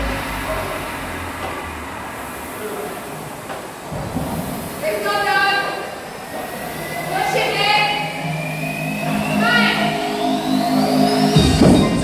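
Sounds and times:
rowing machine flywheel whirring: 0.0s - 12.0s.

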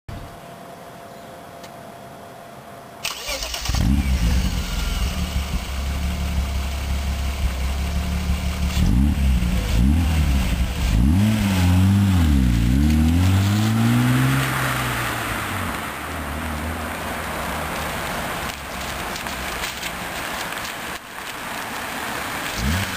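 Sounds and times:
car engine starting and idling: 3.0s - 22.9s
engine revving: 3.1s - 17.8s, 22.4s - 22.9s.

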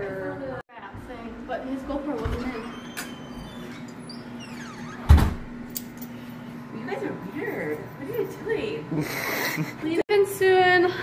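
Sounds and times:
wooden door swinging open: 2.2s - 5.5s.

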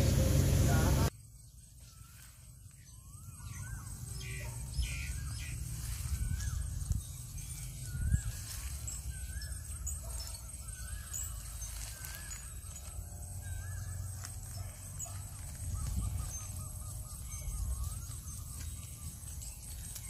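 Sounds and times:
birds warbling: 0.0s - 20.0s.

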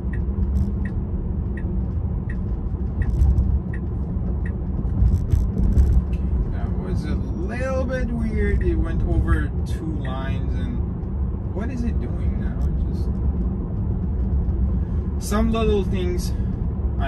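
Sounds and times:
light ticking: 0.0s - 5.5s
tyre and road rumble: 0.0s - 17.0s.

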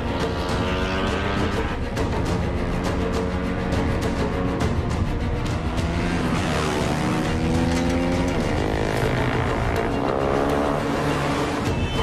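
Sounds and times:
motorcycle engine revving: 0.0s - 4.7s, 5.3s - 11.8s
film score music: 0.0s - 12.0s.

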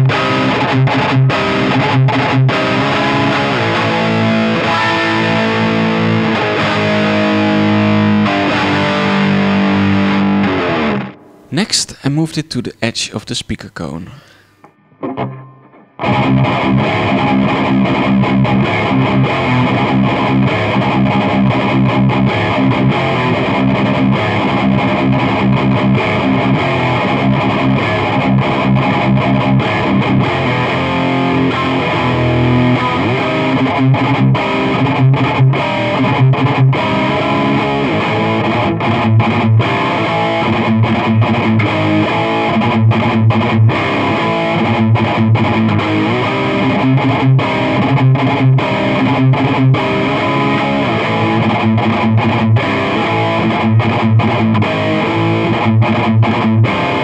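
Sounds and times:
distorted electric guitar riff: 0.0s - 57.0s.

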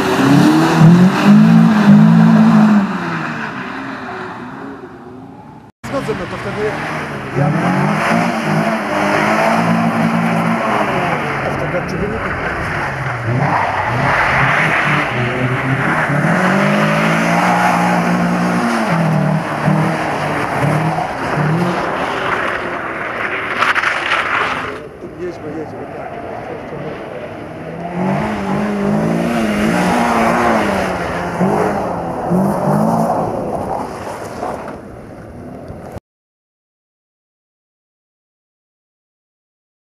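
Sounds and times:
car engine revving hard: 0.0s - 4.2s, 6.0s - 22.5s, 26.5s - 33.6s.

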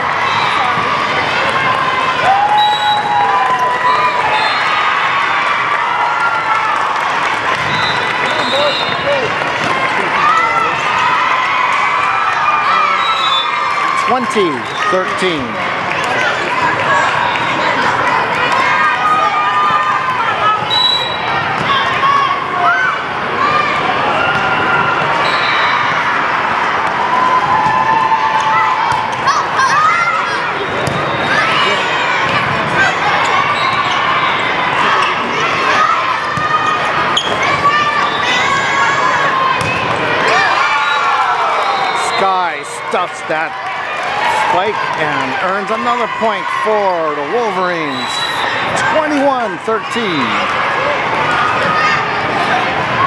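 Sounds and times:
spectators shouting and cheering: 0.0s - 53.0s
players calling out: 7.4s - 22.6s, 28.0s - 52.9s.

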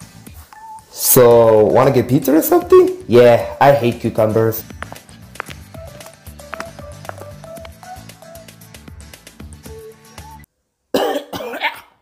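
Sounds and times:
background music: 0.0s - 10.5s
cartoon character coughing: 11.0s - 12.0s.

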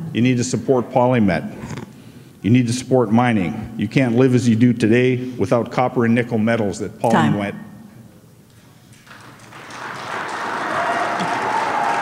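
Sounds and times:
audience applauding: 8.9s - 12.0s.

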